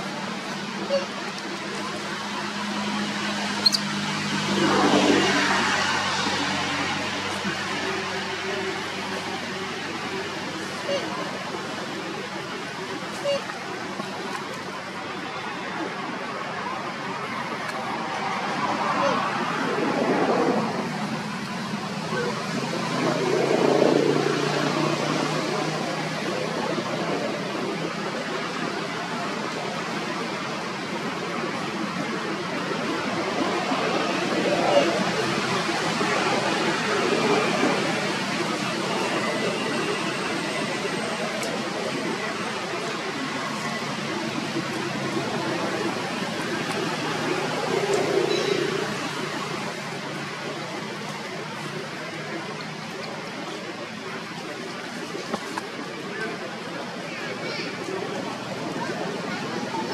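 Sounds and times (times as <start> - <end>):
steady rushing noise: 0.0 - 59.9.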